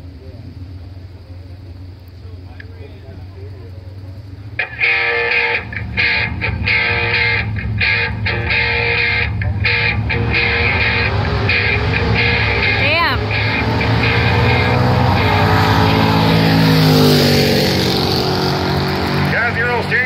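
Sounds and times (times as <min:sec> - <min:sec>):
race car engines accelerating: 0:00.0 - 0:20.0
music: 0:04.6 - 0:15.0
announcer speaking: 0:08.3 - 0:16.7, 0:19.3 - 0:20.0.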